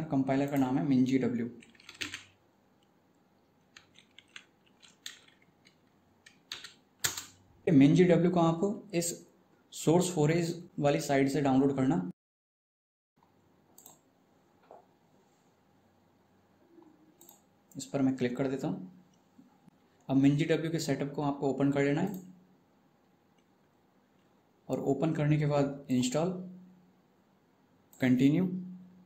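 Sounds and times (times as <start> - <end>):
keyboard keys clicking: 1.6 - 2.4, 3.7 - 7.4.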